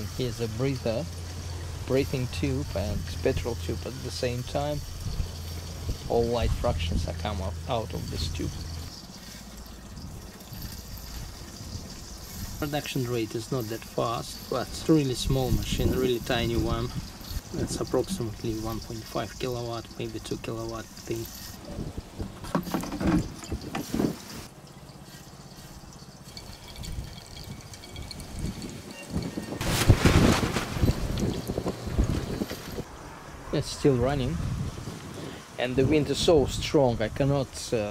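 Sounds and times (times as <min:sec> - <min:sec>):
oil trickling into plastic container: 0:00.0 - 0:29.5
wind buffeting microphone: 0:04.8 - 0:07.2, 0:14.5 - 0:19.0, 0:21.6 - 0:24.5, 0:26.4 - 0:32.9, 0:34.0 - 0:37.1.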